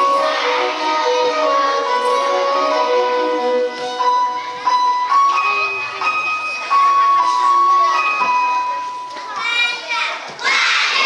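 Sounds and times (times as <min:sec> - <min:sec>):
children singing: 0:00.0 - 0:04.8
accompanying music: 0:00.0 - 0:09.3
children shouting together: 0:09.4 - 0:11.0.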